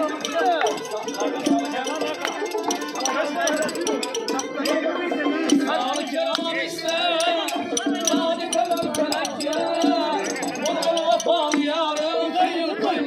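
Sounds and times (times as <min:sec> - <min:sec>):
sharp percussion strikes: 0:00.0 - 0:12.5
crowd voices: 0:00.0 - 0:13.0.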